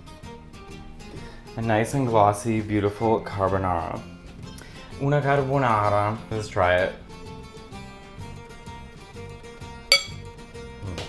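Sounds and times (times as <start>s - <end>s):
background music: 0.0s - 11.0s
fork clinking ceramic bowl: 9.9s - 10.2s.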